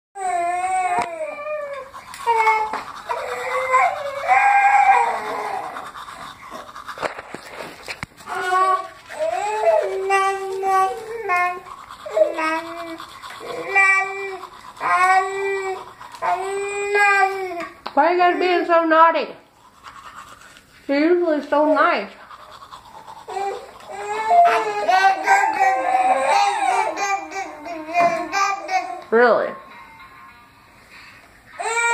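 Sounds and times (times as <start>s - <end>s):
babies fussing and crying: 0.2s - 6.7s, 8.2s - 18.8s, 22.6s - 29.1s, 31.5s - 31.9s
toothbrush scrubbing teeth: 0.2s - 18.7s, 19.4s - 29.1s.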